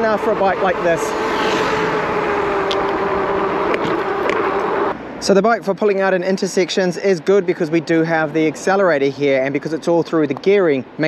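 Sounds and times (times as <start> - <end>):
electric motor whine: 0.0 - 5.0
wind and tyre noise: 0.0 - 11.0.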